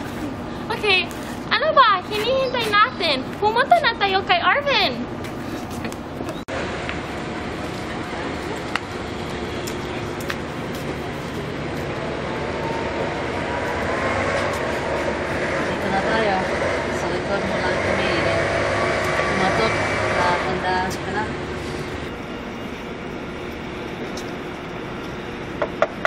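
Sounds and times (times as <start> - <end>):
people talking: 0.6 - 5.0, 15.5 - 21.4.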